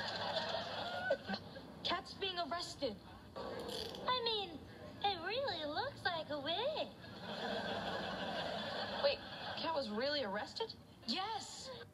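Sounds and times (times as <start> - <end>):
studio audience laughter: 0.0 - 1.4, 7.1 - 9.7.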